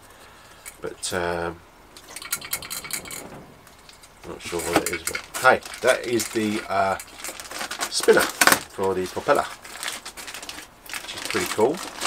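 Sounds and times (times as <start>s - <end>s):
plastic bag crinkling: 2.0s - 12.0s.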